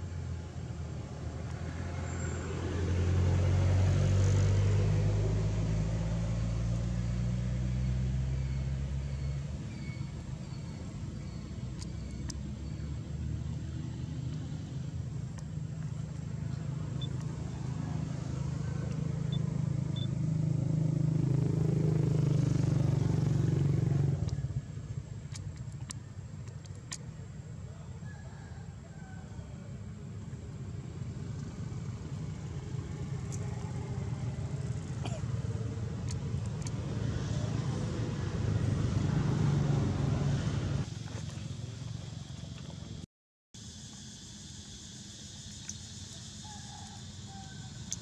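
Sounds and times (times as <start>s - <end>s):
vehicle engine running: 0.0s - 27.7s, 29.6s - 43.0s.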